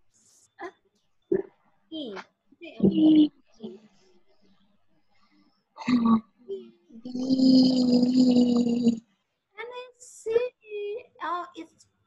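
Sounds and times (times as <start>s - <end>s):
short vocal sound: 5.8s - 9.0s.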